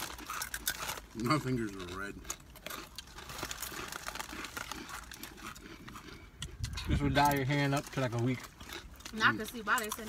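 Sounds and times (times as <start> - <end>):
chips crackling being eaten: 0.0 - 10.0
snack bags crinkling: 0.0 - 10.0.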